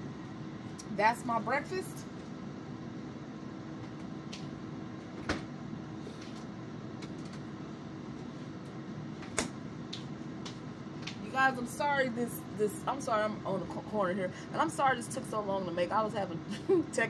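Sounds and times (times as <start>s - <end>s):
low kitchen room hum: 0.0s - 17.0s.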